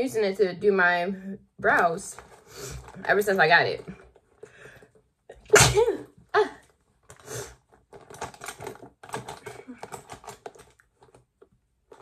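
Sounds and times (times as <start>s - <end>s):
woman sneezing: 5.5s - 6.6s.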